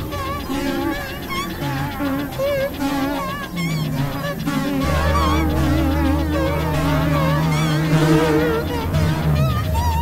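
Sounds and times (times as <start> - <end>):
experimental electronic music: 0.0 - 10.0.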